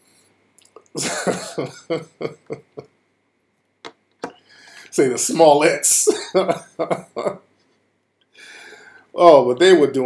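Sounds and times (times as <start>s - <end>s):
man laughing: 0.9s - 3.0s, 5.2s - 7.5s.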